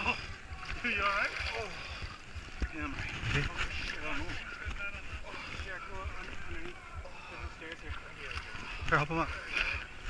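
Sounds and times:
faint voices: 0:00.0 - 0:10.0
muddy water sloshing: 0:00.0 - 0:10.0.

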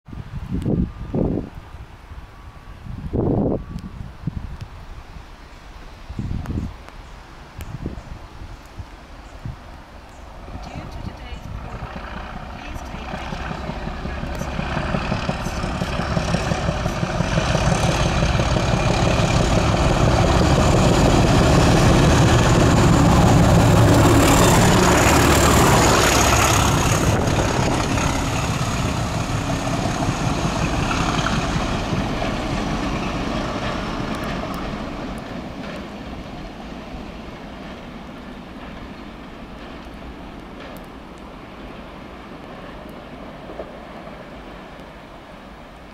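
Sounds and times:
diesel locomotives working hard: 0:09.8 - 0:45.9.

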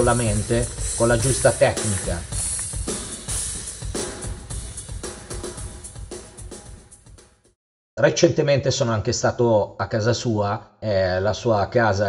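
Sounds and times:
drum kit played live: 0:00.0 - 0:07.4.

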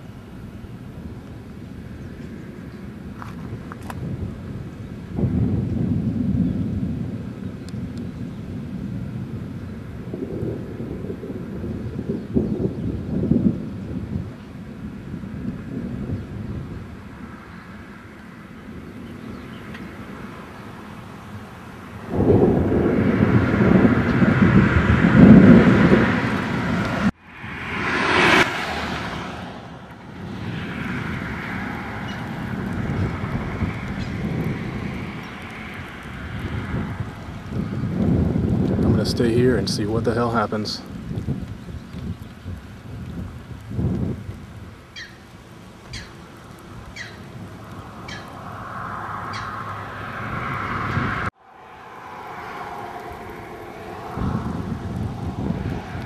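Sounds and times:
thunder rumbling: 0:00.0 - 0:56.0
rushing noise: 0:19.9 - 0:40.6, 0:46.1 - 0:56.0.

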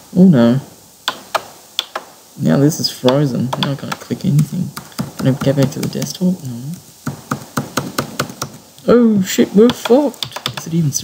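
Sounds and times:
laptop buttons clicking: 0:01.1 - 0:02.1, 0:03.1 - 0:04.1, 0:07.1 - 0:08.6, 0:09.7 - 0:10.7.

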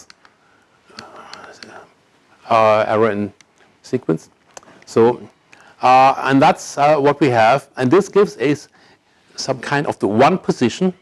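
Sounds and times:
faint clicks: 0:00.0 - 0:01.8.

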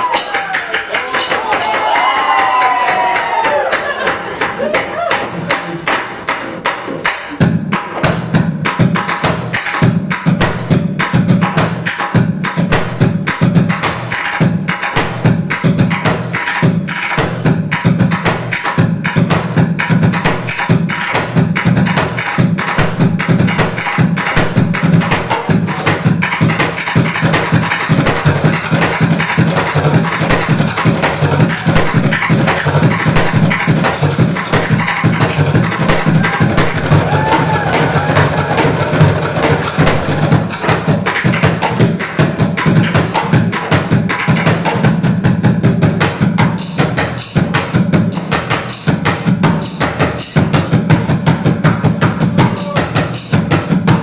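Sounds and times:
drumstick clacks on rims: 0:00.0 - 0:08.3.

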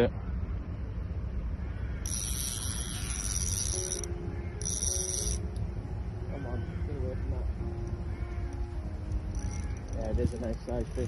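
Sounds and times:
fishing reel buzzing: 0:02.0 - 0:05.6, 0:08.5 - 0:11.0.

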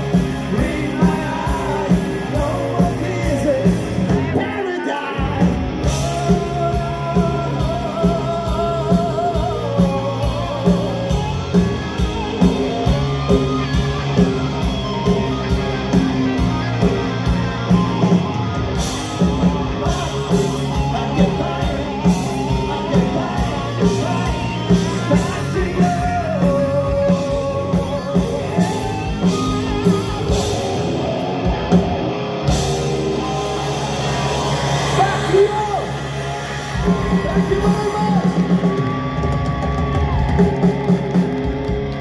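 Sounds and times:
man singing: 0:00.0 - 0:11.6, 0:19.6 - 0:28.9
live rock band playing: 0:00.0 - 0:42.0.

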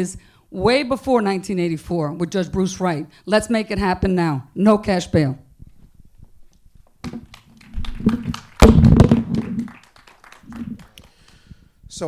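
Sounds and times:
microphone handling knocks and thumps: 0:05.6 - 0:09.7.

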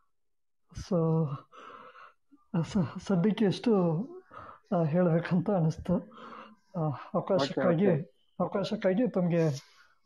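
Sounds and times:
person's voiced hesitation: 0:07.3 - 0:07.8.

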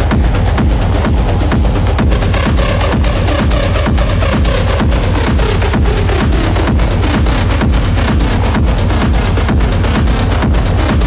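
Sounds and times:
loud techno music: 0:00.0 - 0:11.0.

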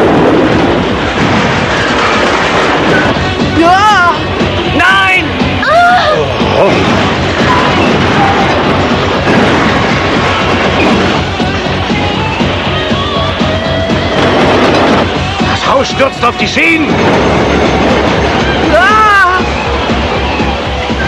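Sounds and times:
falling debris: 0:00.0 - 0:05.6, 0:06.2 - 0:21.0
building collapsing: 0:00.0 - 0:21.0
dramatic background music: 0:00.0 - 0:21.0.

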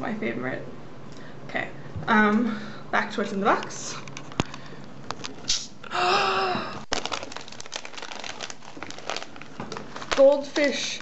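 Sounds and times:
plastic snack bags crinkling: 0:06.8 - 0:11.0.

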